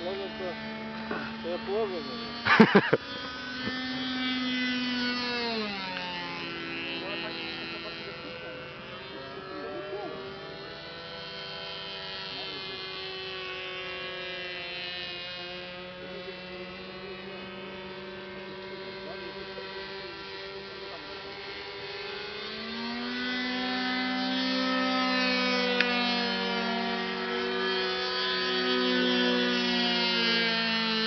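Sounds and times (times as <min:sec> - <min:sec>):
model airplane motors buzzing: 0:00.0 - 0:31.0.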